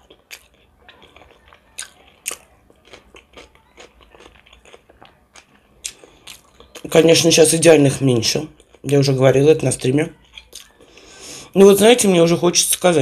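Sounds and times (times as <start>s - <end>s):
person chewing crunchy food: 0.0s - 7.2s, 8.1s - 9.2s, 10.2s - 11.2s.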